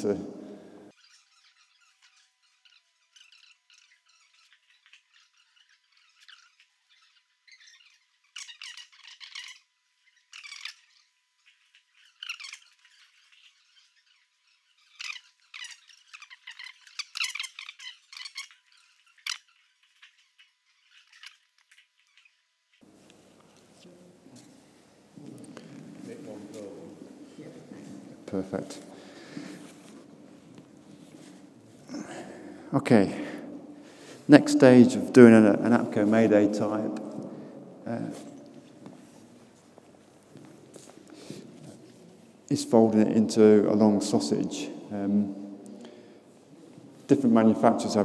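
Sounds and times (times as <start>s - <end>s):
nylon fabric rustling and handling: 21.6s - 32.6s.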